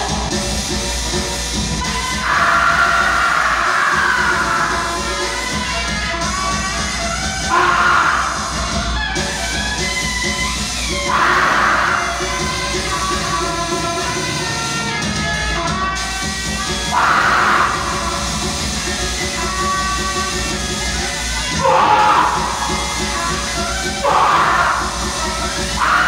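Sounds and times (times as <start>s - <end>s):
traditional opera music: 0.0s - 26.0s.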